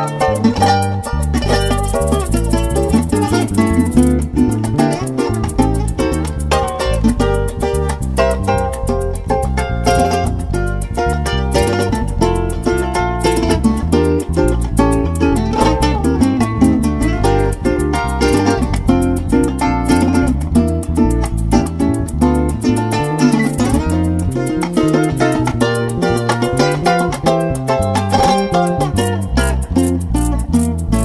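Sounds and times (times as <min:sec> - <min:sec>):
electric bass: 0:00.0 - 0:31.0
shaken maracas: 0:00.0 - 0:31.0
strummed cuatro: 0:00.0 - 0:31.0.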